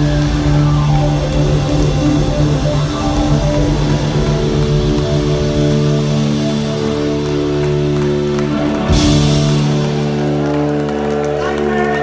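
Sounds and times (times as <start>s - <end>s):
live band playing loud: 0.0s - 12.0s.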